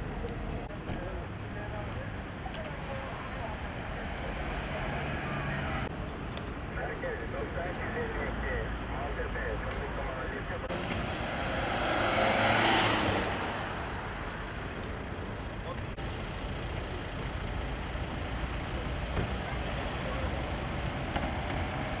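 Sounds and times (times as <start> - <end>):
road traffic noise: 0.0 - 22.0
vehicle passing close by: 3.4 - 5.9, 10.7 - 14.6.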